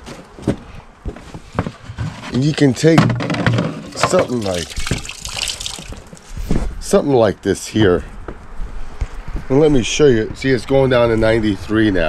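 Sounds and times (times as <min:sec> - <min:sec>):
plastic bucket knocks and clunks: 0:01.6 - 0:05.2
bucket lid pulled off: 0:02.0 - 0:05.0.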